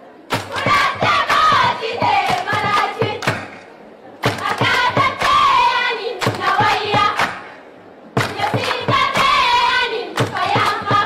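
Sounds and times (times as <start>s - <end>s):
girls chanting a song: 0.3s - 3.5s, 4.2s - 7.6s, 8.2s - 11.0s
quick rhythmic clapping: 0.3s - 11.0s.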